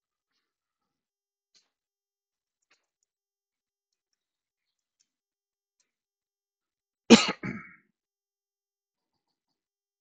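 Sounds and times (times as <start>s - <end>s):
man clearing his throat: 7.1s - 7.8s.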